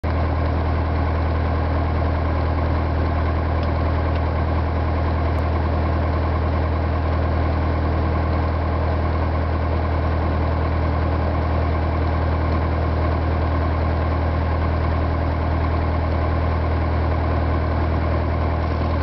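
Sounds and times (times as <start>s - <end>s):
aircraft engine and propeller humming: 0.1s - 19.0s.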